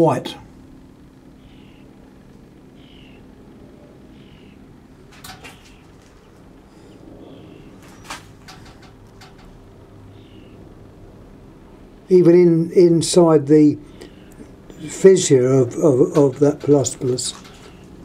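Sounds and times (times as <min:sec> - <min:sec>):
low steady hum: 0:00.0 - 0:18.0
small bird chirping: 0:01.4 - 0:02.0, 0:02.7 - 0:03.3, 0:04.1 - 0:04.7, 0:05.3 - 0:10.6, 0:13.8 - 0:14.4, 0:17.4 - 0:18.0.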